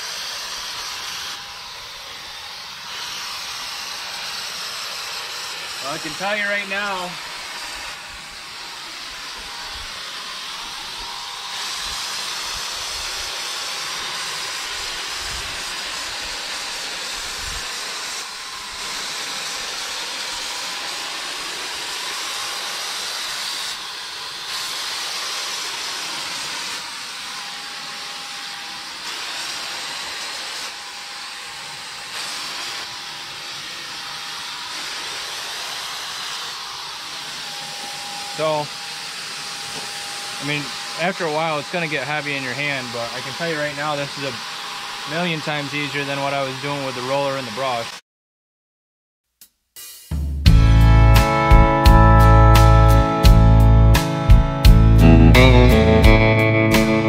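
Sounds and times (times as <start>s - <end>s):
paint sprayer hissing: 0.0s - 47.9s.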